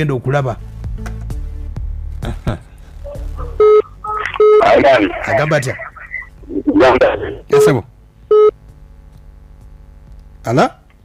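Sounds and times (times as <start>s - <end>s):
low steady hum: 2.6s - 11.0s
short electronic beep: 3.6s - 4.9s.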